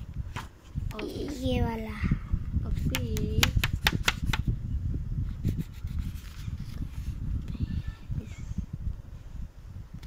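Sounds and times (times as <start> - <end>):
sharp taps: 2.9 - 4.5.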